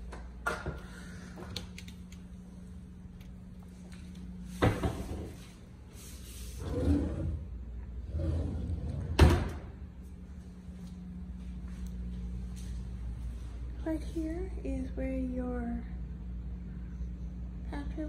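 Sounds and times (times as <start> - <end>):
drawer rubbing and sliding: 6.4 - 9.4.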